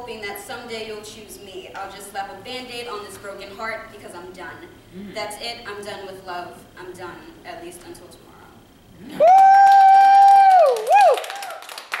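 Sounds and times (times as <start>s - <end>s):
person humming mmm: 4.9s - 5.2s
scattered clapping: 9.3s - 12.0s.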